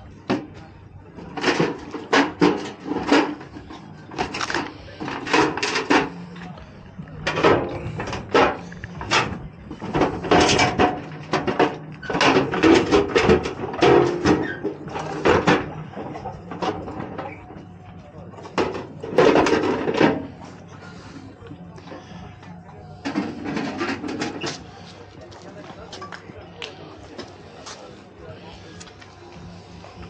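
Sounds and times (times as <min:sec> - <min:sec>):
background voices: 0:00.0 - 0:30.0
metal toolbox clanking: 0:01.2 - 0:06.2, 0:07.2 - 0:17.4, 0:18.4 - 0:20.3, 0:23.0 - 0:24.6.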